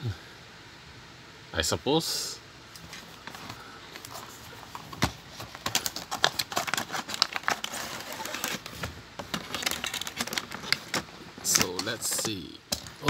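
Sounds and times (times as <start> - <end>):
plastic packaging crinkling: 2.8 - 13.0.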